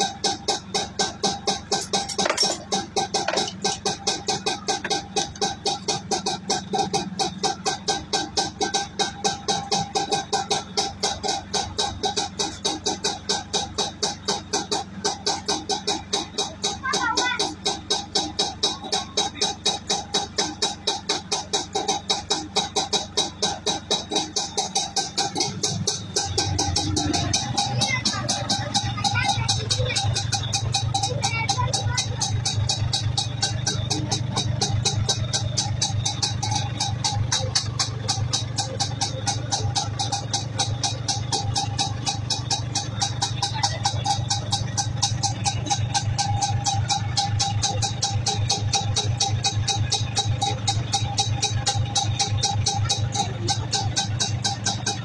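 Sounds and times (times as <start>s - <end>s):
two-stroke engine idling: 0.0s - 55.0s.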